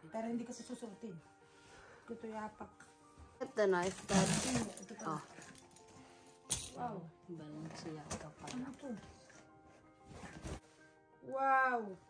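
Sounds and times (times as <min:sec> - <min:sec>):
tape and cardboard tearing: 0:03.9 - 0:04.7.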